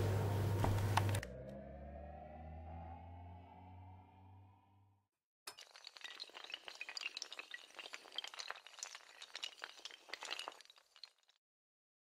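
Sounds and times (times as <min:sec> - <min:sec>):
rising sustained tone: 0:01.2 - 0:05.0.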